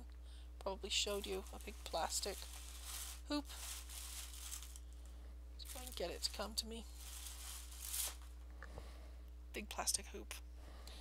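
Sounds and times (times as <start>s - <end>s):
stiff fabric rustling: 0.9s - 8.4s.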